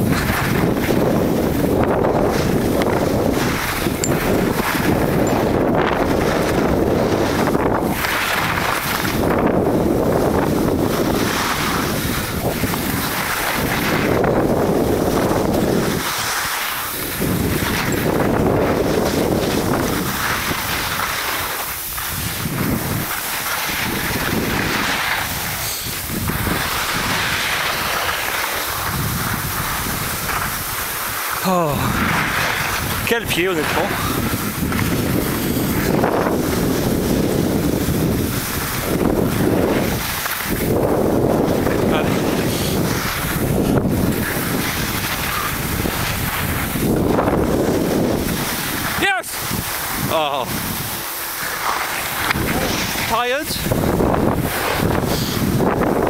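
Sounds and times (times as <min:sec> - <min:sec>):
skis sliding on snow: 0:00.0 - 0:56.0
wind rushing over microphone: 0:00.0 - 0:56.0.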